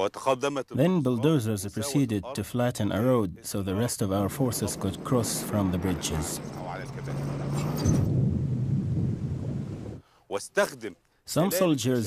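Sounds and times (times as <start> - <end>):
low engine rumble: 3.7 - 10.0.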